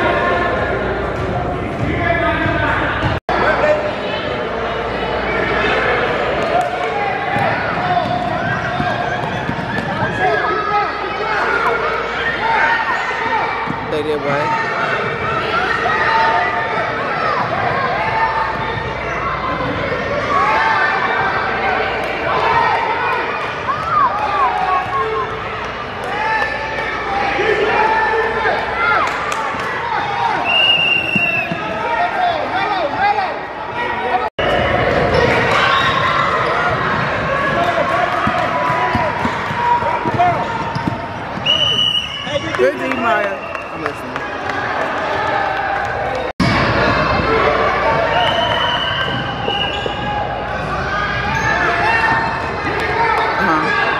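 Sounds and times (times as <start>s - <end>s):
children and spectators chattering: 0.0s - 29.0s, 49.5s - 53.9s
basketball bouncing: 7.3s - 10.1s, 36.7s - 41.4s.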